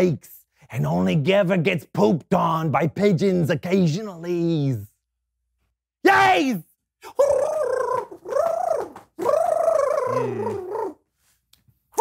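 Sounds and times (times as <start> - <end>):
high-pitched voice cheering: 6.1 - 11.0
lower voice: 7.1 - 11.0.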